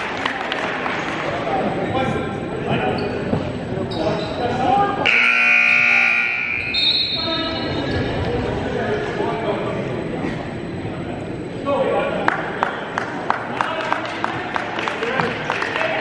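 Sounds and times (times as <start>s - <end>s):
scoreboard horn buzzing: 5.0s - 7.7s.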